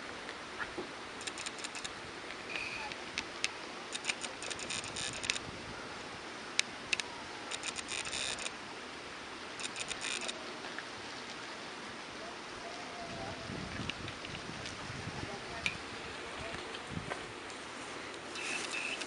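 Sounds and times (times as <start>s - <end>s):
outdoor hiss: 0.0s - 19.0s
lens autofocus motor clicking: 1.2s - 1.9s, 2.6s - 5.4s, 6.6s - 8.6s, 9.6s - 10.4s.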